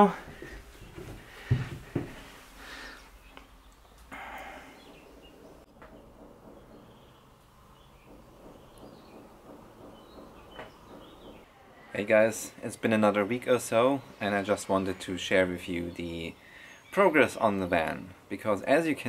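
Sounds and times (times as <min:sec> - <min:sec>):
faint bird chirps: 0:03.1 - 0:12.0.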